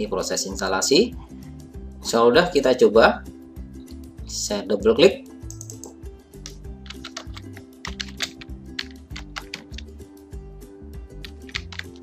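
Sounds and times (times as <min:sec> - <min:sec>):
background music with low notes: 0:00.0 - 0:12.0
keyboard typing: 0:05.5 - 0:09.9, 0:11.2 - 0:12.0.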